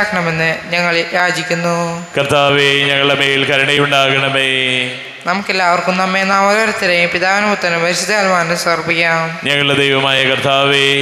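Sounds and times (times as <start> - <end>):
man chanting into a microphone: 2.2 - 5.0, 9.4 - 11.0.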